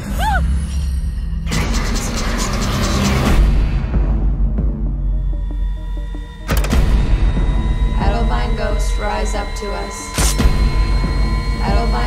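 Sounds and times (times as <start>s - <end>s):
low steady drone: 1.4s - 12.0s.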